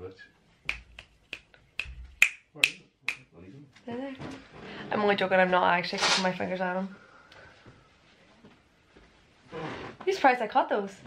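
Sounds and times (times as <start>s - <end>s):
fingers snapping: 0.7s - 3.2s.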